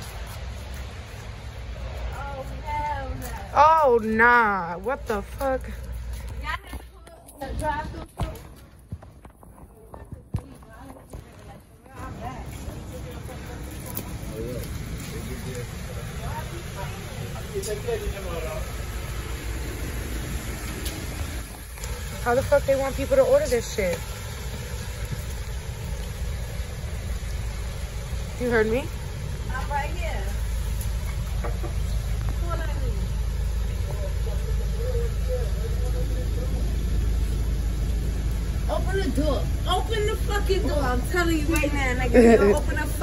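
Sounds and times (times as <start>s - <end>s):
car engine idling: 0.0s - 43.0s.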